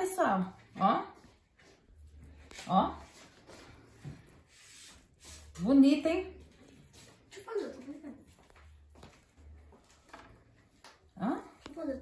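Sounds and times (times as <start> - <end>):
hands rubbing dough: 1.2 - 5.6.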